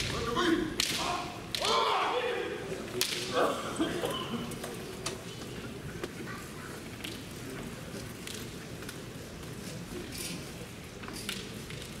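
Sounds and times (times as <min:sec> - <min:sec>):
short fighting shouts: 0:00.4 - 0:02.6.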